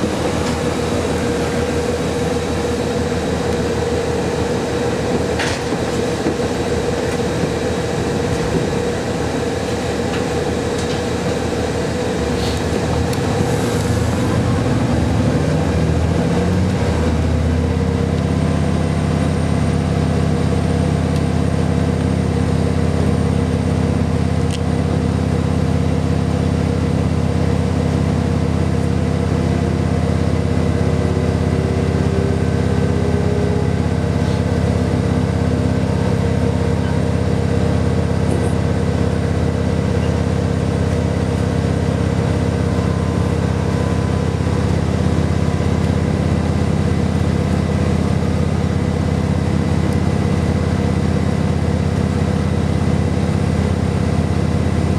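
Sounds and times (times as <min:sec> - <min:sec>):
diesel railcar engine drone: 0:00.0 - 0:54.9.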